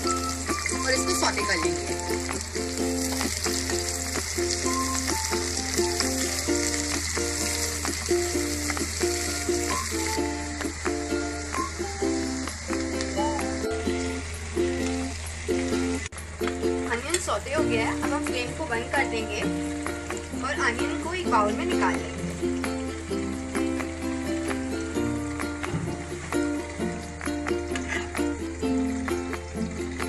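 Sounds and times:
background music: 0.0s - 30.0s
onions sizzling in hot oil: 0.0s - 30.0s.

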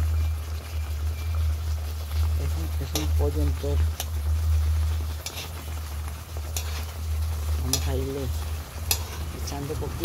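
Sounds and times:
chicken sizzling in oil: 0.0s - 10.0s.

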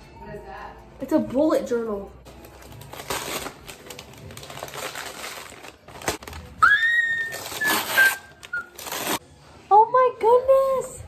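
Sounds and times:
wrapping paper crinkling and tearing: 2.3s - 9.2s.

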